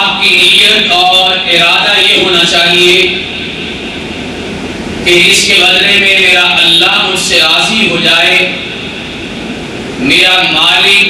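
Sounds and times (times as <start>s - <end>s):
steady whooshing room tone: 0.0s - 11.0s.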